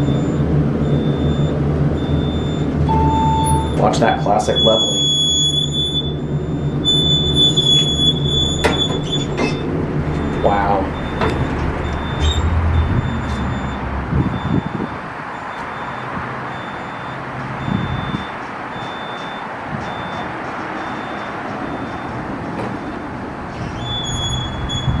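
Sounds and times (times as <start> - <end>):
steady low rumble: 0.0 - 4.6, 5.7 - 15.2
high electronic beep: 0.0 - 22.1
elevator doors closing: 0.0 - 25.0.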